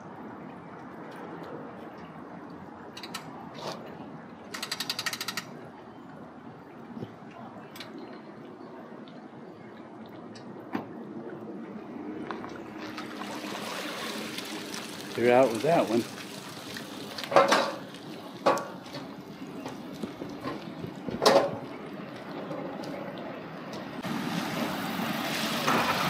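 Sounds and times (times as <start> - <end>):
rapid ratcheting clicks: 4.5 - 5.5
outdoor background hiss: 10.6 - 26.0.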